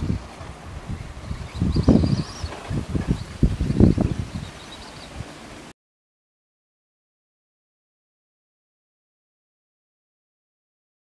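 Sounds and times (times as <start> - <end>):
wind buffeting microphone: 0.0 - 5.7
faint bird chirps: 1.0 - 5.2.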